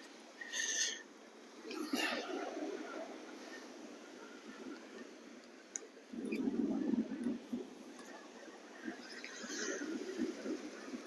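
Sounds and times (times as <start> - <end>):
surf washing on beach: 0.0 - 11.0
wind buffeting microphone: 1.7 - 11.0.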